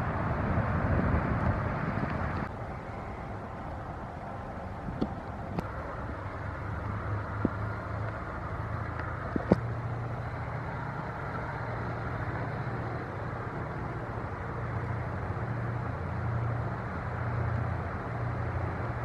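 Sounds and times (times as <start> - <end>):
ship diesel engine drone: 0.0 - 19.0.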